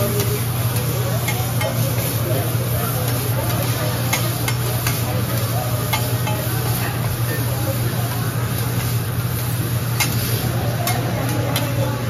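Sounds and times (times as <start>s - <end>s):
shrimp sizzling on a griddle: 0.0s - 12.0s
metal spatulas scraping and tapping: 3.0s - 5.1s, 5.9s - 6.5s.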